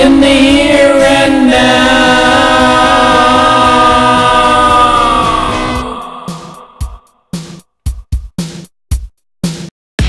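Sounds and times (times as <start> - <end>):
choir singing held chord: 0.0 - 7.1.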